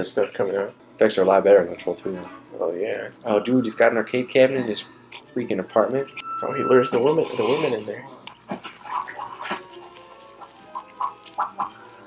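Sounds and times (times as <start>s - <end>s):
quiet background music: 0.0s - 12.0s
creature animal-like noises: 8.5s - 12.0s.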